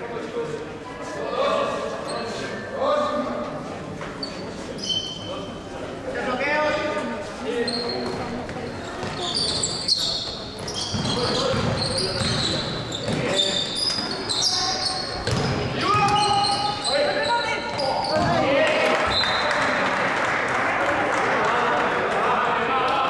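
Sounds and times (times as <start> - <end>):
sneaker squeaks: 2.0 - 2.5, 4.0 - 5.6, 7.5 - 19.6
basketball bouncing on court: 9.0 - 9.6, 10.6 - 13.4, 15.2 - 16.7, 17.7 - 18.4
people calling out: 13.4 - 19.6.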